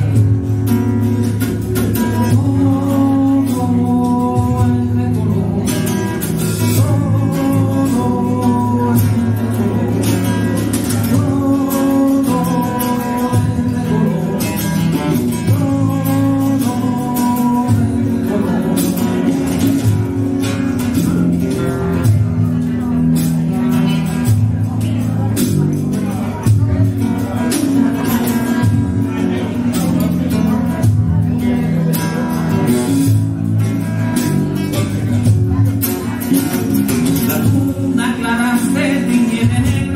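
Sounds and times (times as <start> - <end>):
cajon percussion: 0.0 - 39.9
electric bass: 0.0 - 39.9
strummed acoustic guitar: 0.0 - 39.9.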